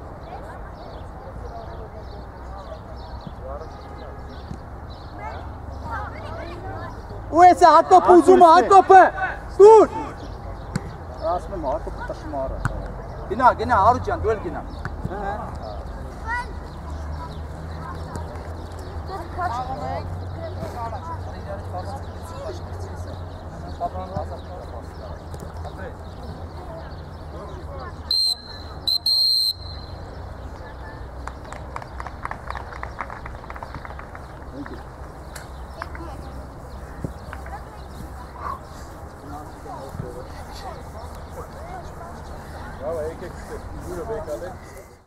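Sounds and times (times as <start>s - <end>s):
distant voices calling: 14.6s - 45.0s
distant voices calling out: 33.2s - 45.0s.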